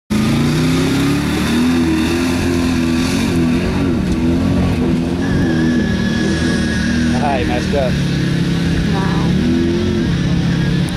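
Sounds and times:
truck engine revving: 0.1 - 10.9.

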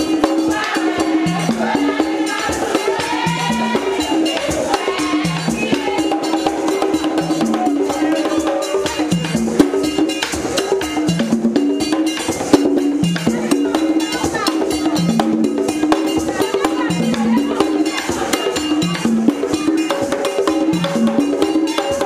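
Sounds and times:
voices singing: 0.0 - 11.0, 15.9 - 22.0
steady drumming: 0.0 - 22.0
struck percussion: 0.0 - 22.0.

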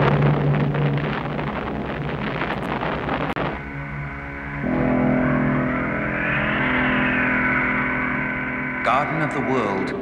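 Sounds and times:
layered tone drone: 0.0 - 10.0
rushing whoosh: 3.4 - 10.0.

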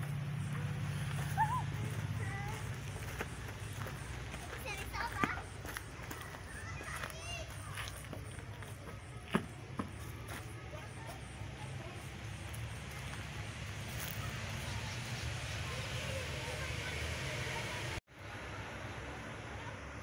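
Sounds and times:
children's indistinct voices: 0.0 - 18.0, 18.8 - 20.0.

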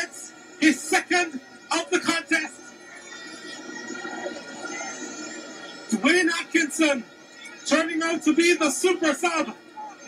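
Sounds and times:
steady tones: 0.0 - 10.0.

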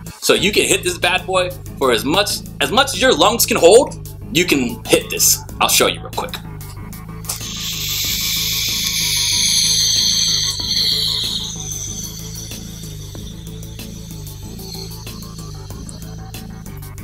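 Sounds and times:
background music: 0.0 - 17.0
vape hissing: 7.1 - 16.9.

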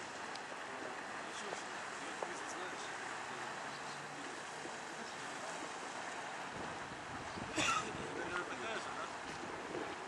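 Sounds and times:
moving water: 0.0 - 10.0
wind on microphone: 6.3 - 10.0.

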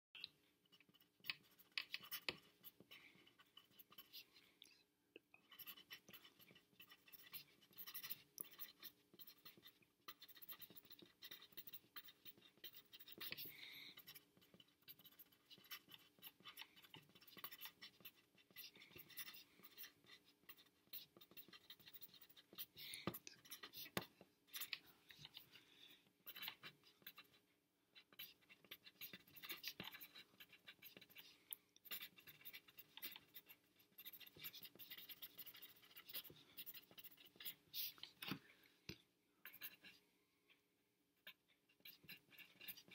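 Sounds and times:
pencil scratching on paper: 0.6 - 4.6, 5.4 - 38.4, 39.4 - 40.0, 41.2 - 42.9.

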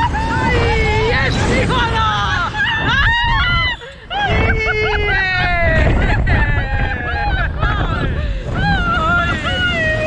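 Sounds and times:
wind rumble on microphone: 0.0 - 10.0
women laughing and shrieking: 0.0 - 10.0.

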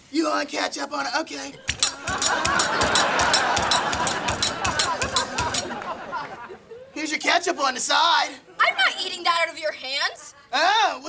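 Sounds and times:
audience laughing: 1.6 - 7.0
scattered clapping: 1.7 - 6.4.

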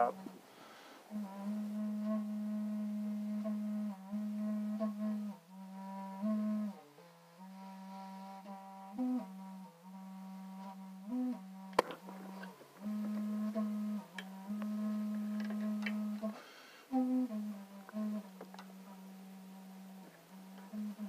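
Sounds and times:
person humming: 0.0 - 0.4, 1.1 - 6.8, 7.4 - 21.0.

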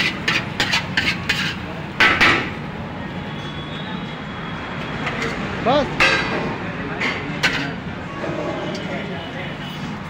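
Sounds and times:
wok and steel plates clanking: 0.0 - 2.6, 5.0 - 8.4.

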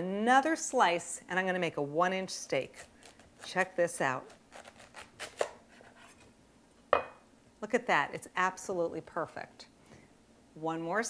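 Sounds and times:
knife cutting cauliflower: 2.4 - 6.2.

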